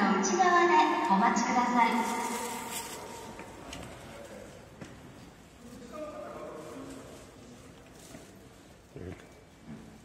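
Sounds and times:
woman announcing over loudspeaker: 0.0s - 2.8s
faint station background: 0.0s - 10.0s.

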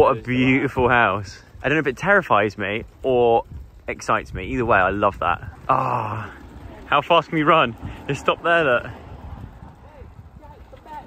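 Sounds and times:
quiet street background: 0.0s - 11.0s.

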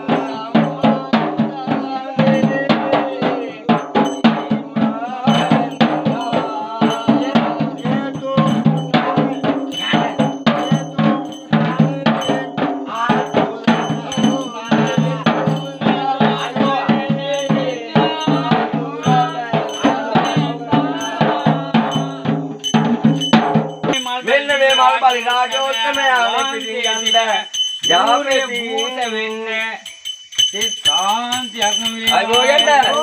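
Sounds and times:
man chanting: 0.0s - 23.0s, 23.9s - 29.9s, 30.5s - 33.0s
barrel drum beaten fast: 0.0s - 29.3s
metallic jingling: 3.8s - 33.0s
metallic ringing: 5.3s - 33.0s.

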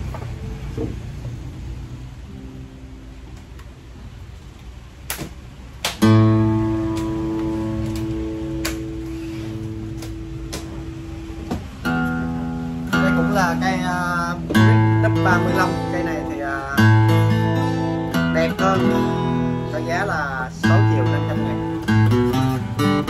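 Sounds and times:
acoustic guitar notes and chords: 0.0s - 23.0s.

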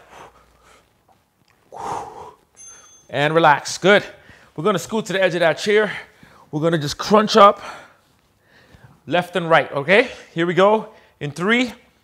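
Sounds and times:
man exhaling forcefully: 1.7s - 2.4s.

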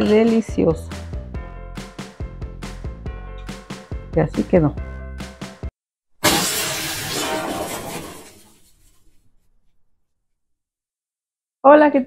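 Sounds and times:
noisy crash effect: 6.2s - 10.0s.

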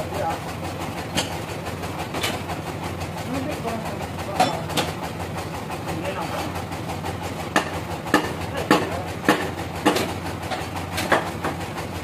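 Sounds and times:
bandsaw mill humming: 0.0s - 12.0s.

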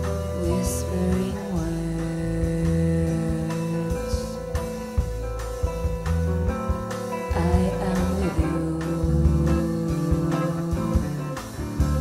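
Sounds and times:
jazz-fusion band music: 0.0s - 12.0s.

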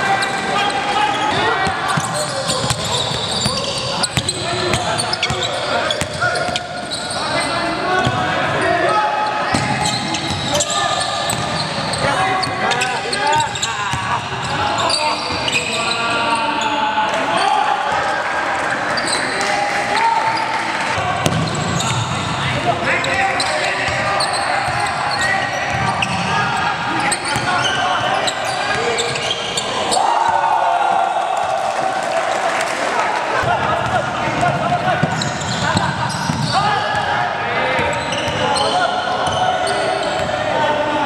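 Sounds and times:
players shouting in a gym: 0.0s - 41.0s
basketball bouncing: 21.2s - 22.1s, 33.4s - 36.5s.

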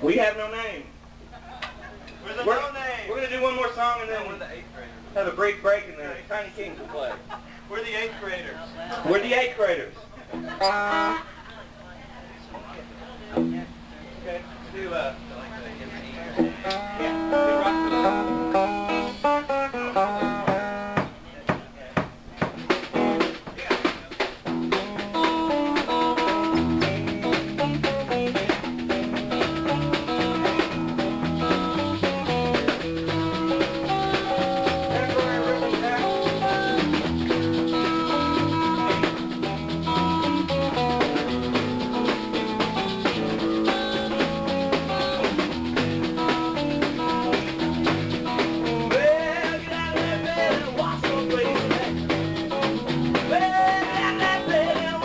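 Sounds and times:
electric guitar melody: 10.3s - 11.2s, 12.8s - 13.9s, 15.3s - 21.0s, 22.5s - 23.4s, 24.4s - 55.0s
blues rock band playing: 10.3s - 11.3s, 16.2s - 21.2s, 22.2s - 55.0s
drum hits: 16.4s - 55.0s.

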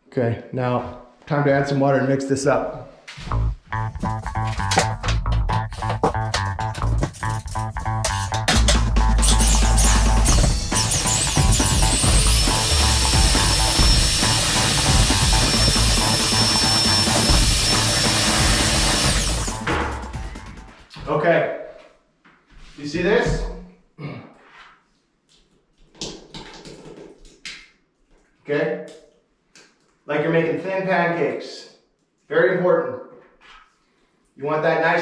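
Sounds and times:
background music with a beat: 3.3s - 20.9s
electric drill mixer whine: 9.2s - 19.7s.

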